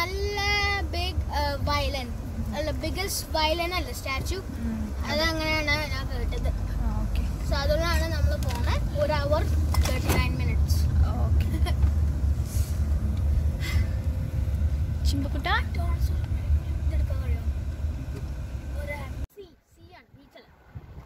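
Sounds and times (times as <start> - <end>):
car rumble from inside cabin: 0.0 - 19.3.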